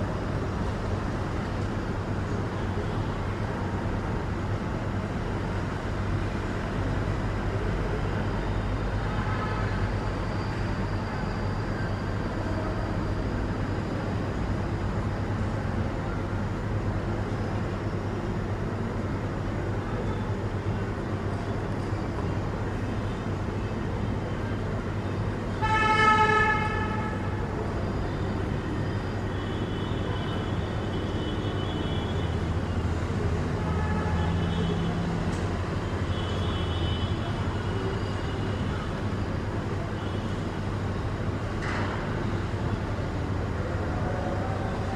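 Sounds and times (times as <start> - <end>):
traffic rumble: 0.0 - 44.9
vehicle horn honk: 25.6 - 27.4.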